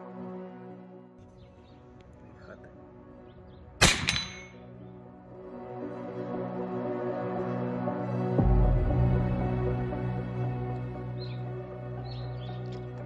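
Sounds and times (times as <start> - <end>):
quiet background music: 0.0 - 13.0
air rifle shot: 3.8 - 4.5.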